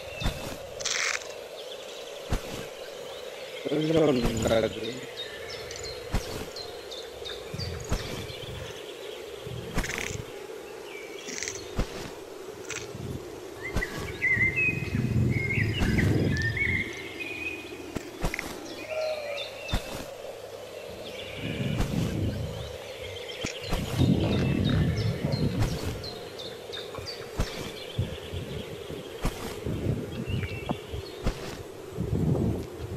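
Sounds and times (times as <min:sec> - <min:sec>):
birds chirping and calling: 0:00.0 - 0:31.8
low rumbling noise: 0:11.3 - 0:31.2.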